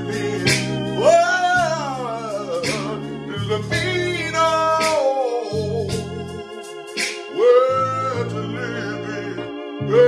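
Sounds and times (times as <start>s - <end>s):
man singing gospel: 0.0s - 6.6s, 7.2s - 10.0s
organ keyboard chords: 0.0s - 10.0s.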